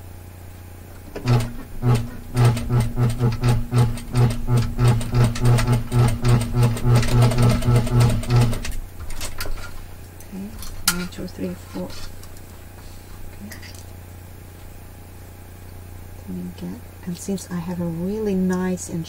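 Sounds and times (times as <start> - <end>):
sewing machine stitching: 1.2 - 8.8.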